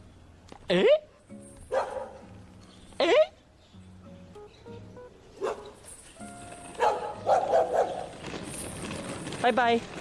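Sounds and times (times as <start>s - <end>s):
faint background music: 0.0s - 10.0s
dog barking: 1.7s - 2.2s, 5.4s - 5.8s, 6.8s - 8.1s.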